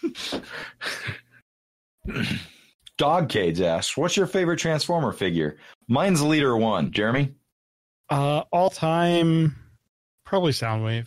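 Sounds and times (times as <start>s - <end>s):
person laughing breathily: 0.0s - 1.4s.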